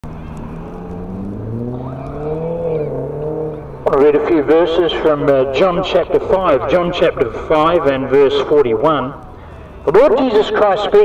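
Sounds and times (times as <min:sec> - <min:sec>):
vehicle engine running: 0:00.0 - 0:10.5
man speaking: 0:03.8 - 0:09.1, 0:09.9 - 0:11.0.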